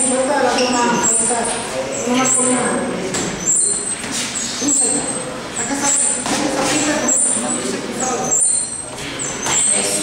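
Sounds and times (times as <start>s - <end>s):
steady background noise: 0.0s - 10.0s
voices talking: 0.0s - 10.0s.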